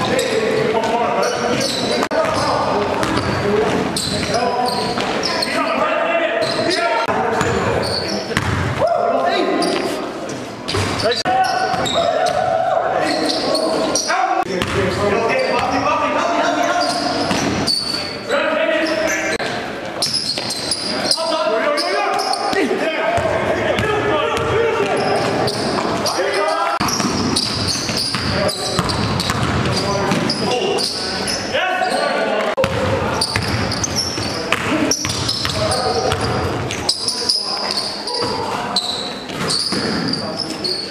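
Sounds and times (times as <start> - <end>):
basketballs bouncing on gym floor: 0.8 - 5.3, 7.3 - 8.9, 10.7 - 12.5, 14.4 - 15.0, 17.3 - 17.7, 26.8 - 30.5, 32.6 - 37.0.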